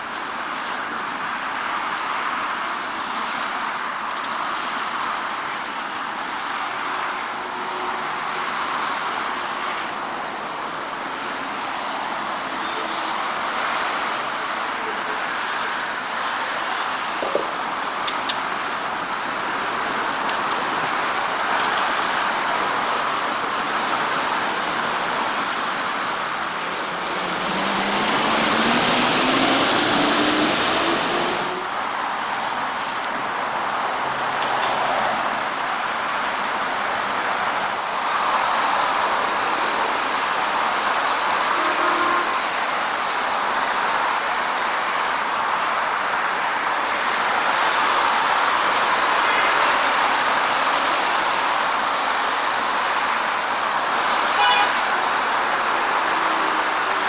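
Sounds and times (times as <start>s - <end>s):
busy road traffic: 0.0s - 57.0s
vehicle engine accelerating: 26.8s - 31.6s
brief horn toot: 41.5s - 42.4s, 54.4s - 54.8s.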